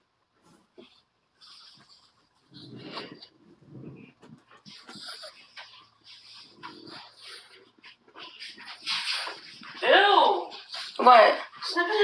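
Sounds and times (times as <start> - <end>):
puppy sniffing: 0.4 - 12.0.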